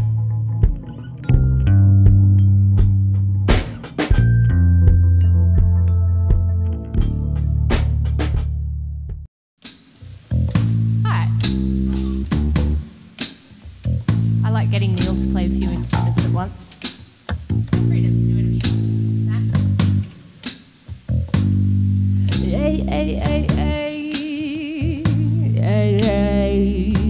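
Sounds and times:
bass guitar riff: 0:00.0 - 0:09.2, 0:10.1 - 0:13.1, 0:13.7 - 0:16.6, 0:17.3 - 0:20.2, 0:21.0 - 0:23.8, 0:24.8 - 0:27.0
drum kit hits: 0:00.0 - 0:22.6.

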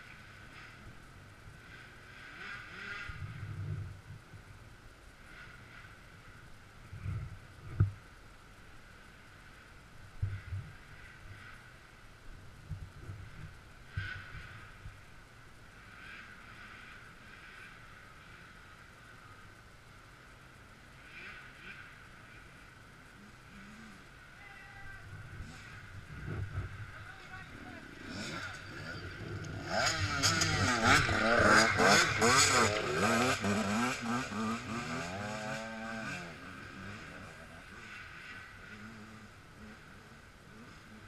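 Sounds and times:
muffled dirt bike engine: 0:00.0 - 0:41.0.

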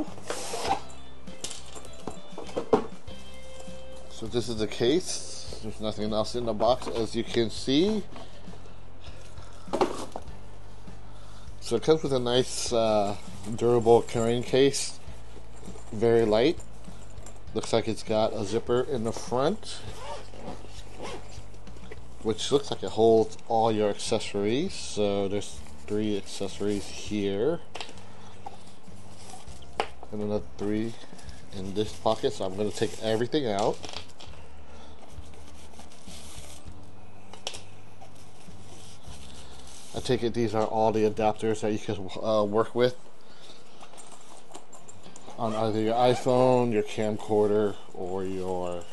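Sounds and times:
low electrical hum: 0:00.0 - 0:48.9
cardboard packaging rustling: 0:11.7 - 0:34.4, 0:35.1 - 0:41.5, 0:43.9 - 0:48.9.

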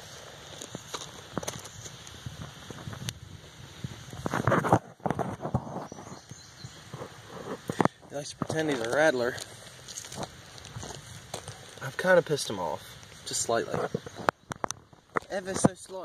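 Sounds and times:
crunching on gravel: 0:00.0 - 0:03.2, 0:04.0 - 0:06.3, 0:06.9 - 0:16.0.

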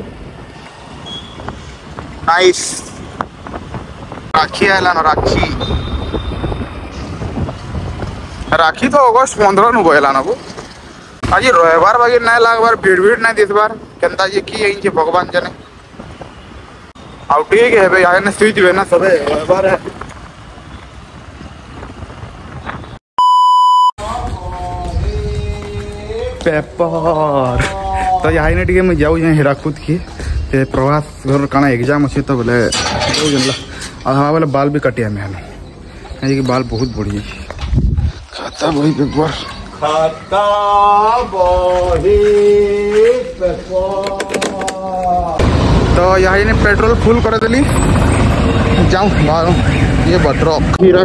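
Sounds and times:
wind on microphone: 0:00.0 - 0:08.5, 0:19.2 - 0:23.0, 0:24.0 - 0:30.7, 0:37.4 - 0:38.6, 0:40.4 - 0:50.8
street and riding noise: 0:00.0 - 0:23.0, 0:24.0 - 0:51.0
voices: 0:17.3 - 0:20.0, 0:24.0 - 0:51.0
electronic beep: 0:23.2 - 0:23.9
low rumble: 0:45.4 - 0:50.8
motorbike running: 0:45.4 - 0:51.0.

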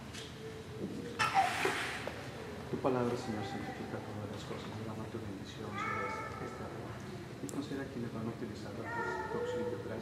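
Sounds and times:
low murmuring voices: 0:00.0 - 0:10.0.

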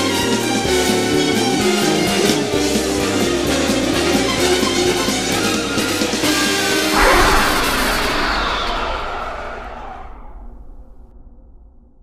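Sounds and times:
ringing crash hit: 0:06.9 - 0:11.5.

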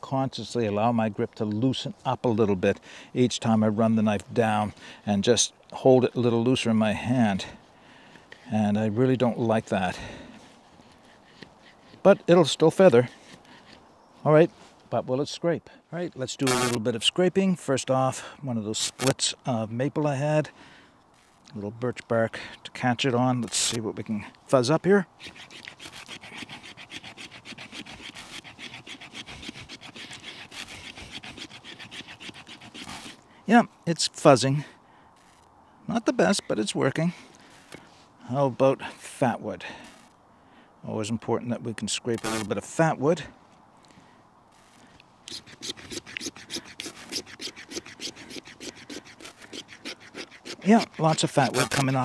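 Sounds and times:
knife blade scraping wood: 0:16.4 - 0:16.8, 0:23.4 - 0:23.8, 0:25.2 - 0:33.2, 0:35.2 - 0:35.5, 0:44.5 - 0:52.0.

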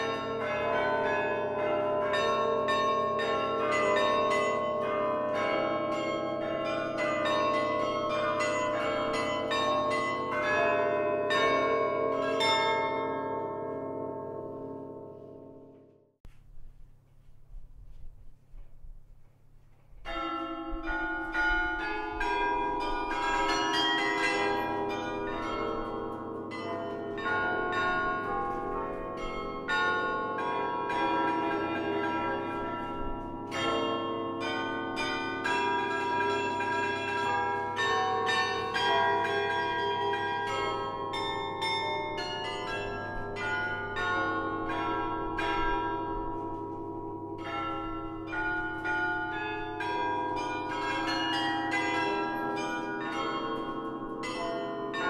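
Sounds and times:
carillon bells playing melody: 0:00.0 - 0:15.5, 0:20.0 - 0:55.0.

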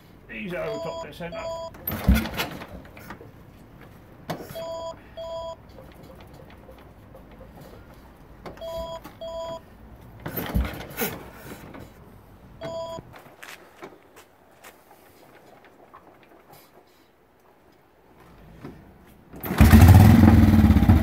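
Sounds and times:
electronic two-tone beeps: 0:00.7 - 0:01.7, 0:04.5 - 0:05.6, 0:08.6 - 0:09.6
motorcycle kick-start thumps and clanks: 0:01.7 - 0:04.6, 0:10.2 - 0:11.9, 0:18.2 - 0:21.0.

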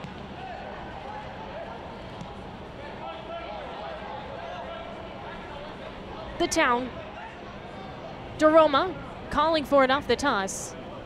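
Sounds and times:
stadium hum: 0:00.0 - 0:11.0.

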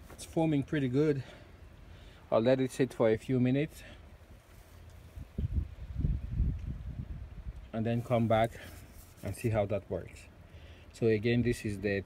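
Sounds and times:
wind buffeting microphone: 0:05.2 - 0:07.7.

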